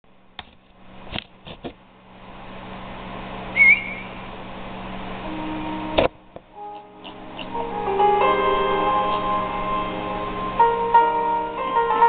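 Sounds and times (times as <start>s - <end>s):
sharp whistle-like chirp: 3.5s - 4.2s
soft sustained piano notes: 5.2s - 12.0s.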